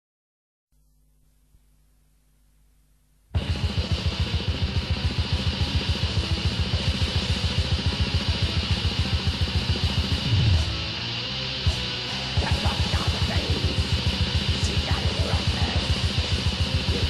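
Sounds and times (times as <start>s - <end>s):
distorted guitars: 0.8s - 17.0s
fast drumming: 3.4s - 17.0s
low sliding note: 10.2s - 11.0s.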